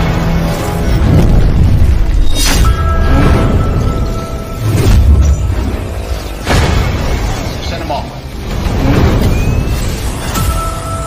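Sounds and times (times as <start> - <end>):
film action sound effects: 0.0 - 11.0
music: 0.0 - 11.0.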